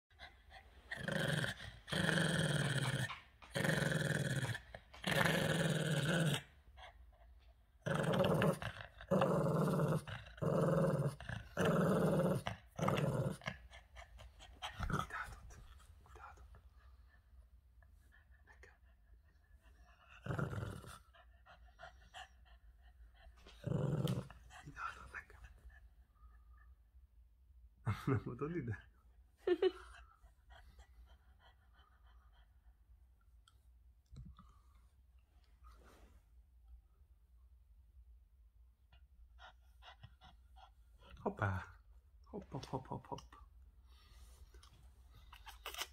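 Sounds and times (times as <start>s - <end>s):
dog growling: 0.8s - 6.5s, 7.8s - 15.4s, 20.0s - 21.2s, 23.4s - 25.1s.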